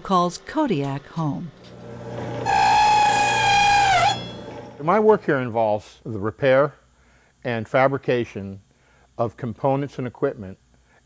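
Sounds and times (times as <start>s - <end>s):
electric machine motor whine: 0.0s - 5.2s.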